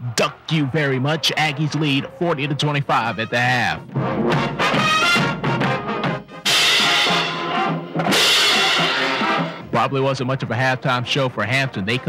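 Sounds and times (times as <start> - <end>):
band playing: 0.3 - 12.0.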